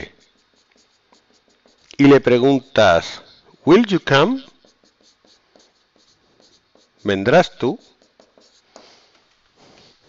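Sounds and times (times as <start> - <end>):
marker pen writing on whiteboard: 0.0 - 10.0.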